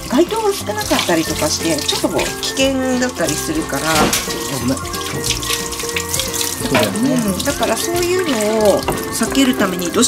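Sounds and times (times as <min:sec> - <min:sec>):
background music: 0:00.0 - 0:10.0
shower hose spraying water: 0:00.0 - 0:10.0.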